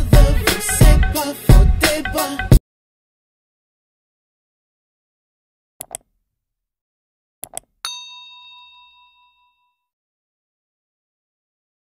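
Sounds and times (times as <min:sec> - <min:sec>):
notification bell ding: 0:07.9 - 0:09.8.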